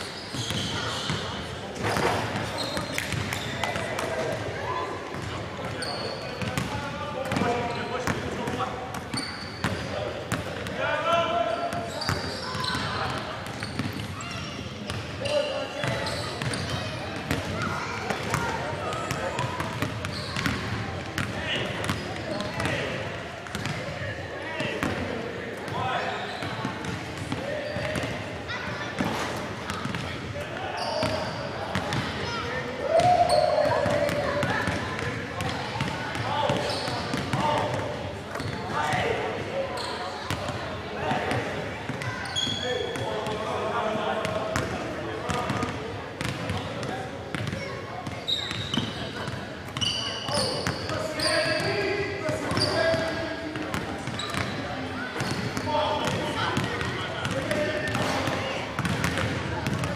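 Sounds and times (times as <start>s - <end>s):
people talking in gymnasium: 0.0s - 59.9s
basketballs bouncing on wooden floor: 7.3s - 10.5s, 11.8s - 15.0s, 15.8s - 22.8s, 23.4s - 23.8s, 45.5s - 49.9s, 55.2s - 59.9s.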